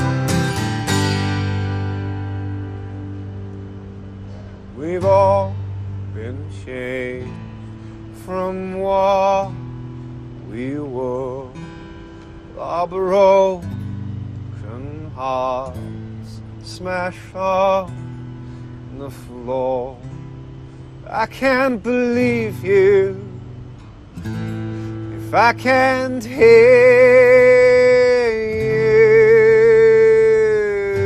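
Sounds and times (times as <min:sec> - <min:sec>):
keyboard chords: 0:00.0 - 0:06.5
acoustic guitar strumming: 0:00.0 - 0:31.0
man singing wordless notes: 0:04.1 - 0:23.8, 0:24.4 - 0:31.0.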